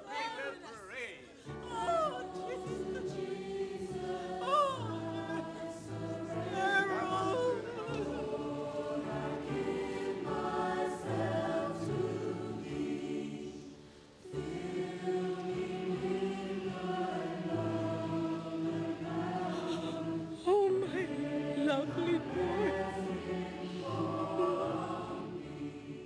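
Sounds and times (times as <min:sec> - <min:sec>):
choir singing a hymn: 0:00.0 - 0:26.0.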